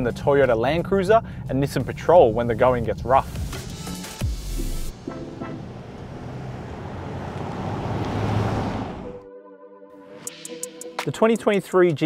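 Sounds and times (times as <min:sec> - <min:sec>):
background music: 0:00.0 - 0:06.2, 0:08.5 - 0:12.0
car driving past: 0:04.9 - 0:09.2.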